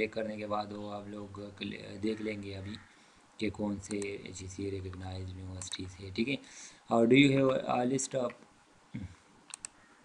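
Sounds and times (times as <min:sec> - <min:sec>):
computer mouse clicks: 0:03.8 - 0:04.2, 0:09.4 - 0:09.8.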